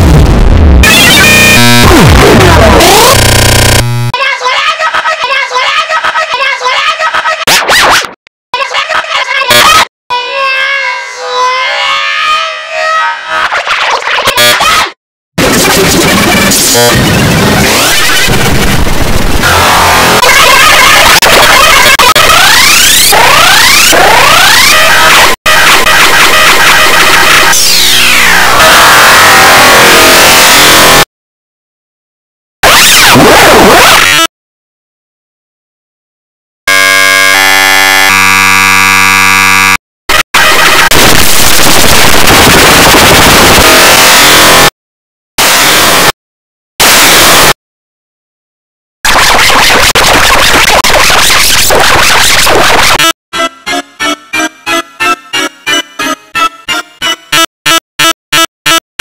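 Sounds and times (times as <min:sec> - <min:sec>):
distorted music: 0:00.0 - 0:04.1, 0:15.4 - 0:31.1, 0:32.6 - 0:34.0, 0:40.2 - 0:44.7, 0:49.1 - 0:57.8
sound effects: 0:00.0 - 0:04.1
harsh dense electronic noise: 0:00.0 - 0:04.2, 0:15.4 - 0:31.1, 0:32.6 - 0:34.2, 0:36.7 - 0:44.8, 0:45.4 - 0:46.2, 0:46.8 - 0:47.6, 0:49.1 - 0:58.8.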